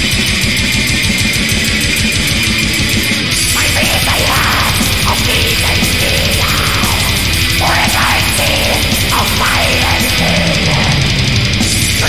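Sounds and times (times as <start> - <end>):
black metal music: 0.0 - 12.0
distorted guitars: 0.0 - 12.0
rapid drumming: 0.0 - 12.0.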